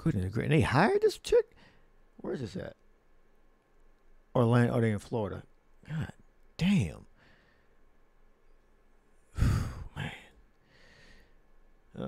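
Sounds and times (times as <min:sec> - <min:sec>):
man exhaling whew: 0:09.4 - 0:10.0.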